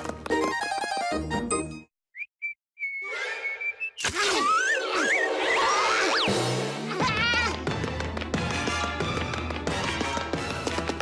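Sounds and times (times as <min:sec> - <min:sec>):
cartoon whistle notes: 0:02.2 - 0:06.2.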